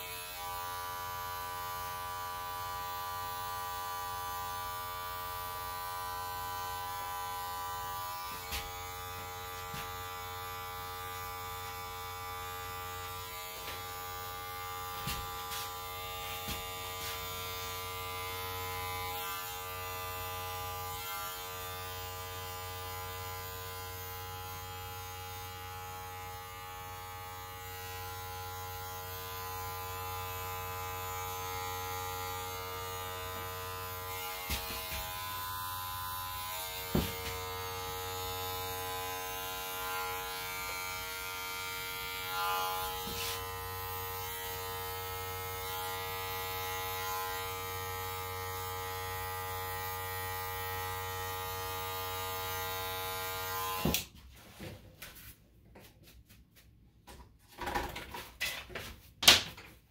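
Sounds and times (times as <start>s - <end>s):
electric hair clippers buzzing: 0.0s - 54.2s.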